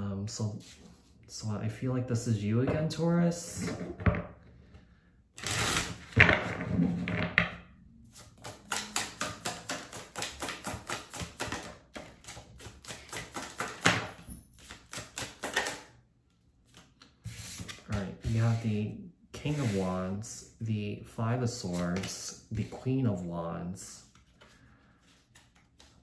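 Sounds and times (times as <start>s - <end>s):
cards being shuffled: 8.1s - 15.9s, 24.0s - 26.0s.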